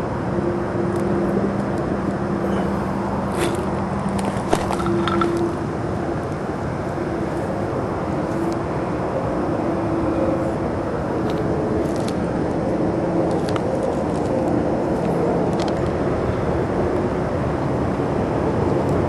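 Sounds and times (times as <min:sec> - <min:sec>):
faint wavering hum: 0:00.0 - 0:17.3
distant motor vehicles droning: 0:00.0 - 0:19.0.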